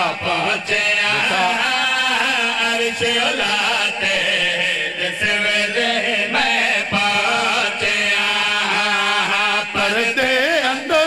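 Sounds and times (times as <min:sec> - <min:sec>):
men chanting through pa: 0:00.0 - 0:11.0.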